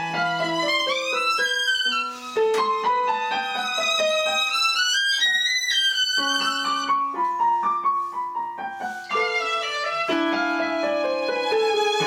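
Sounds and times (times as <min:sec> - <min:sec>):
violin long bowed notes: 0:00.0 - 0:07.0, 0:09.0 - 0:12.0
piano chords: 0:00.0 - 0:12.0.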